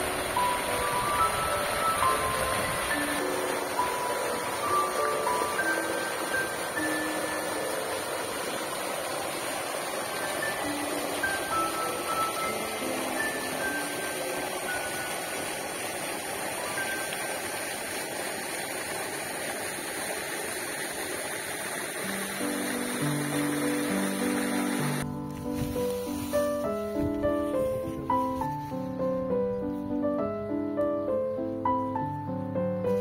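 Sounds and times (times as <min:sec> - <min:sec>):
soft background music: 0:00.0 - 0:17.7, 0:22.1 - 0:33.0
water spray splashing into pool: 0:00.0 - 0:28.6.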